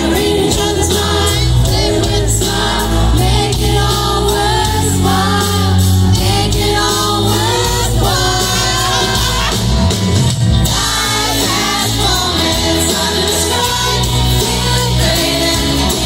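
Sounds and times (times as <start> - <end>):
heavy bass line: 0.0 - 16.0
live pop-rock band: 0.0 - 16.0
vocalists singing: 0.0 - 16.0.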